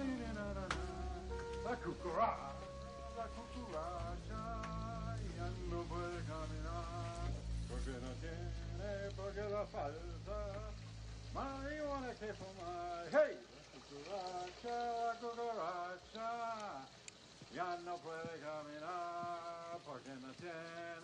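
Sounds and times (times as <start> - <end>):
person singing: 0.0 - 10.8
soundtrack music: 0.0 - 11.7
low steady drone: 0.0 - 12.9.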